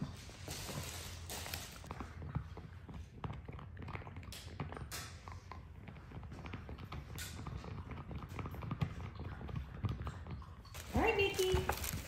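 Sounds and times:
dog chewing a toy: 1.8 - 12.0.

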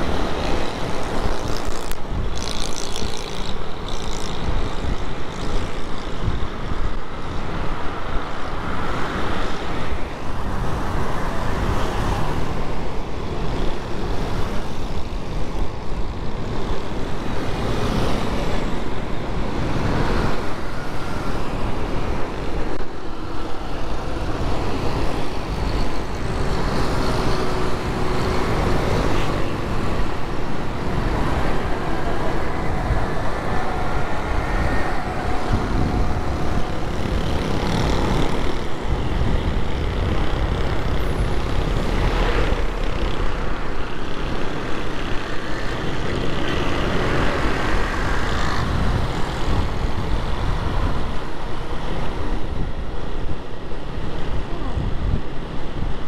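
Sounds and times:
city traffic rumbling: 0.0 - 56.0.

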